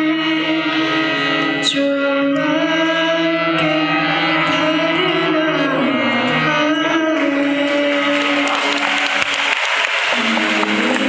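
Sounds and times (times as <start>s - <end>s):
harmonium: 0.0s - 9.0s
person singing: 0.0s - 9.5s, 10.1s - 11.0s
audience applause: 7.2s - 11.0s.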